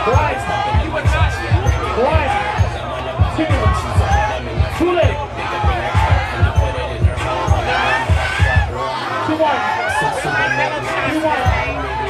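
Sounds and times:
dance beat with thumping kick drum: 0.0s - 8.7s, 11.4s - 11.8s
crowd voices: 0.0s - 12.0s.

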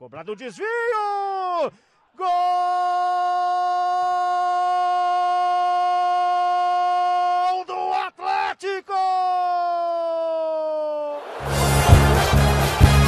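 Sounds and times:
commentator shouting goal: 0.0s - 11.2s.

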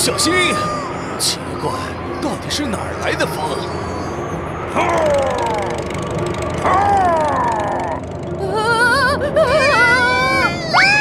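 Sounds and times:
wind wailing: 0.0s - 11.0s.

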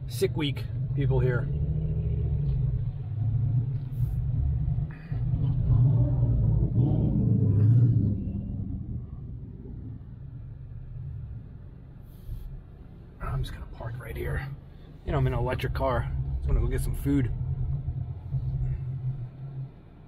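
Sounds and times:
car engine rumbling: 0.0s - 20.0s.

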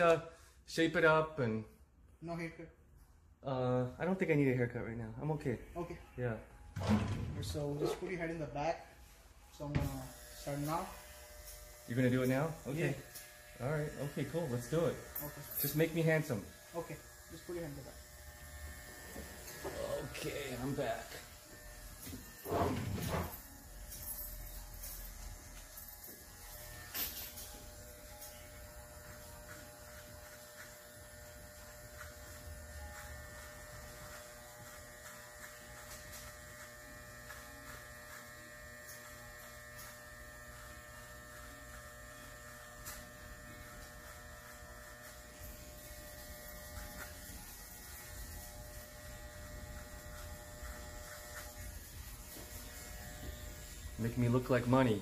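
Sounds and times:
electric hair clippers buzzing: 9.4s - 55.0s.

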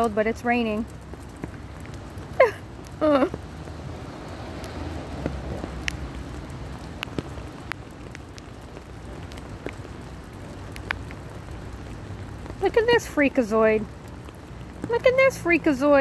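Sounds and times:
steady rain falling: 0.0s - 16.0s.

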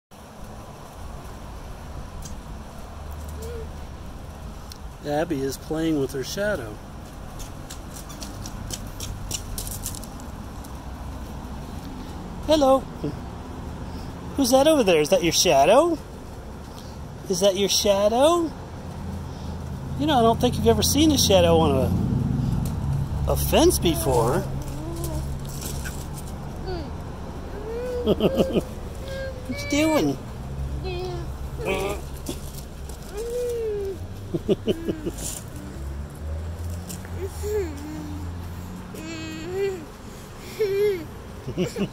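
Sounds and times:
toddler vocalizing: 3.3s - 3.8s, 23.6s - 25.5s, 26.6s - 30.2s, 30.8s - 32.2s, 33.1s - 36.0s, 37.0s - 41.2s
low outdoor rumble: 9.9s - 41.9s.

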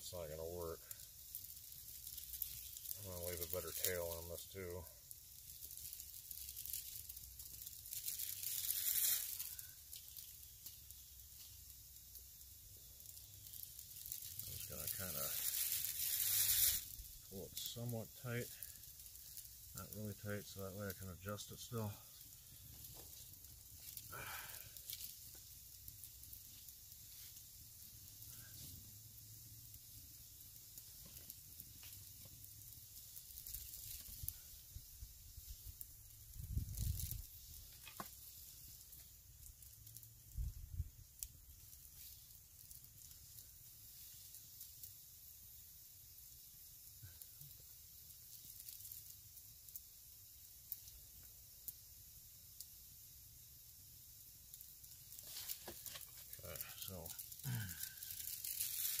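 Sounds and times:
clicks and rustles in leaves: 0.0s - 51.3s, 54.2s - 59.0s
steady hiss: 0.0s - 59.0s.

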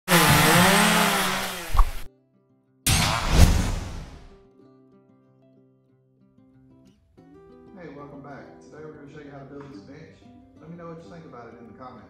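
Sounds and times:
power saw: 0.0s - 2.1s.

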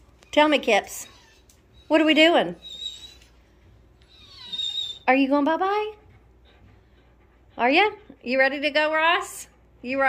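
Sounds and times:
dog whining: 0.3s - 3.4s, 4.0s - 5.1s.

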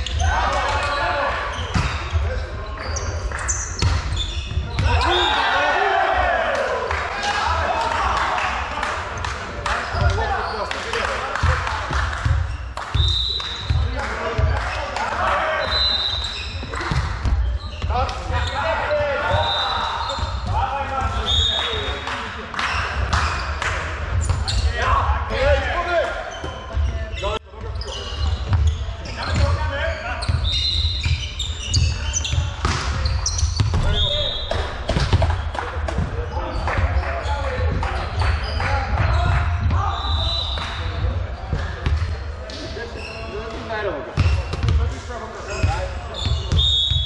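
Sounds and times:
players calling out: 0.0s - 11.6s
volleyball struck and bouncing: 32.5s - 36.2s.

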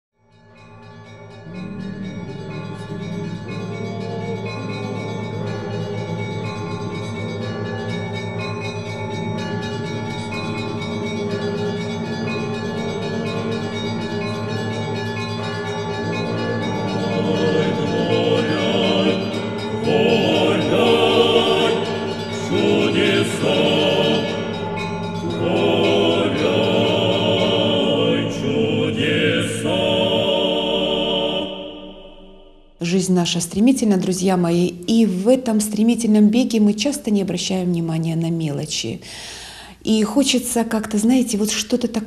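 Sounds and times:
church bells ringing: 0.3s - 32.9s.

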